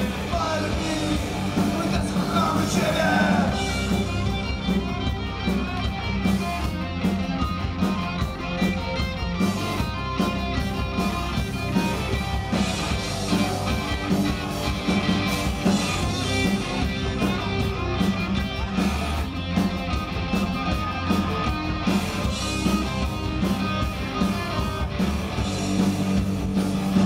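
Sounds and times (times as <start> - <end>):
punk rock band playing: 0.0 - 27.0.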